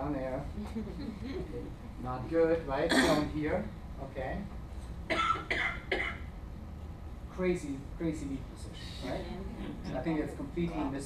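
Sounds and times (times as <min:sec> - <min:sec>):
person coughing: 0:02.9 - 0:03.4, 0:05.1 - 0:06.2.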